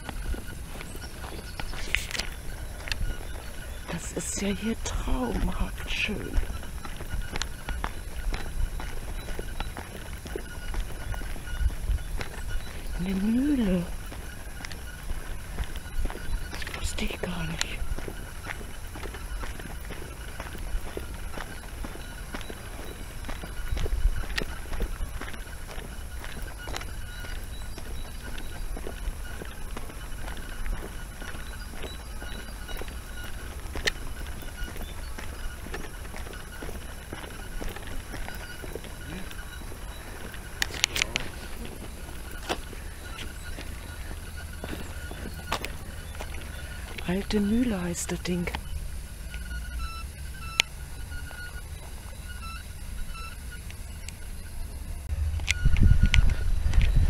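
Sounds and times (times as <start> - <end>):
wind rumble on microphone: 0.0 - 47.2, 52.3 - 57.0
footsteps: 0.0 - 54.2
scattered clicks: 0.0 - 57.0.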